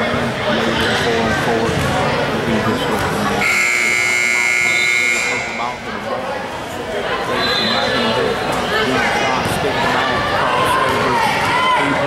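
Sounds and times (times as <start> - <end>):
crowd voices: 0.0 - 12.0
scoreboard buzzer tone: 3.4 - 5.8.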